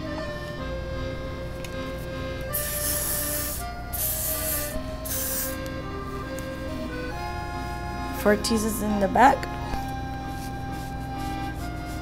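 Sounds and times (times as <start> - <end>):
background music with sustained notes: 0.0 - 12.0
aerosol hairspray spraying: 2.5 - 5.6.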